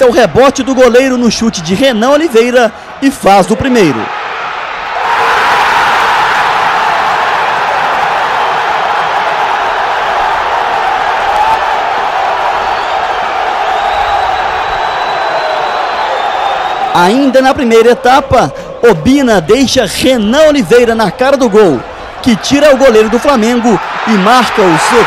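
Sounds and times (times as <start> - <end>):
stadium crowd cheering: 0.0 - 25.0.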